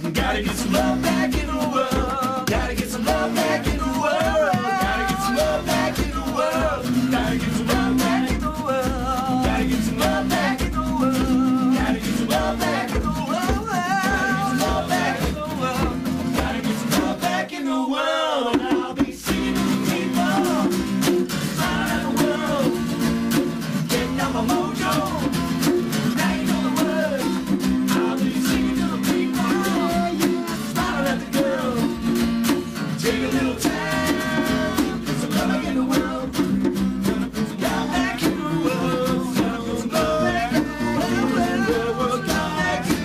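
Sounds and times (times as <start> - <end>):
acoustic guitar strumming: 0.0 - 17.5, 18.5 - 43.0
man singing: 0.0 - 23.0, 23.8 - 43.0.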